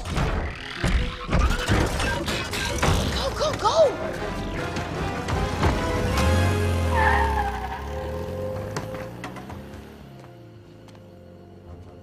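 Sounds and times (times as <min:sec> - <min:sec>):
film score music: 0:00.0 - 0:12.0
car engine rumble: 0:04.6 - 0:12.0.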